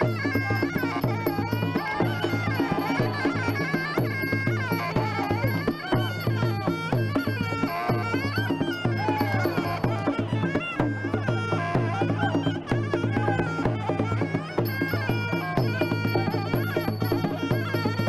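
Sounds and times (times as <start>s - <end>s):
reedy oboe melody: 0.0s - 18.0s
steady drum beat: 0.0s - 18.0s.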